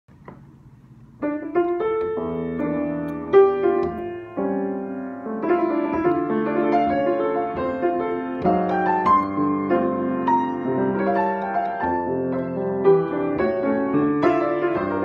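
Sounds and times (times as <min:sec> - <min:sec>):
grand piano jazz ballad: 0:00.3 - 0:15.0.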